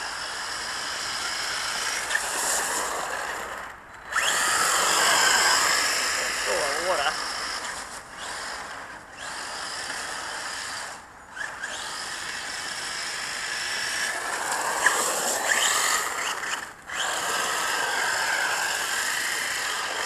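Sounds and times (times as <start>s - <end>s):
tyres hissing on wet asphalt: 0.0s - 3.5s, 13.3s - 20.0s
electric motor whining: 0.0s - 20.0s.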